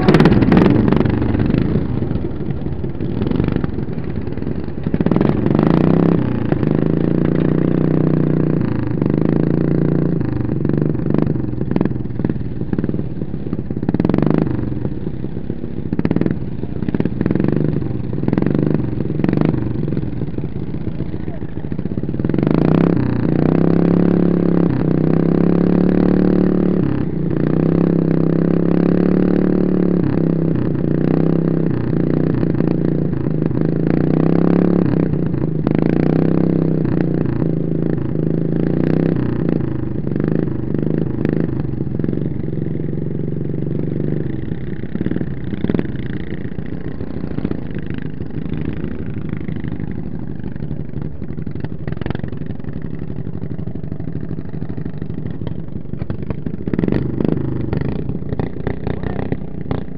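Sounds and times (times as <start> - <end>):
riding lawn mower engine running: 0.0 - 59.9.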